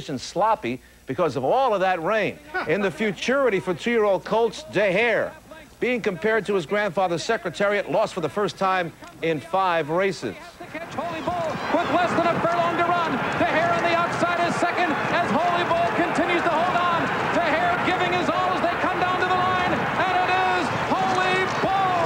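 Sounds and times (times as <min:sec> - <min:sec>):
man announcing horse race: 0:00.0 - 0:22.0.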